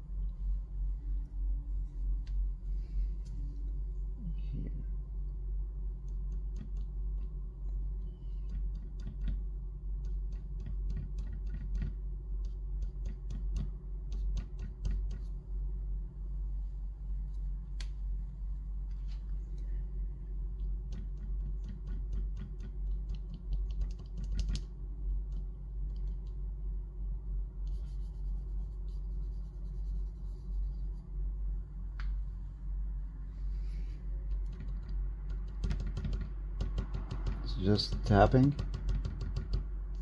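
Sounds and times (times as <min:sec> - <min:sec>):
steady low hum: 0:00.0 - 0:40.0
eraser tapping on paper: 0:10.0 - 0:15.3, 0:34.4 - 0:39.7.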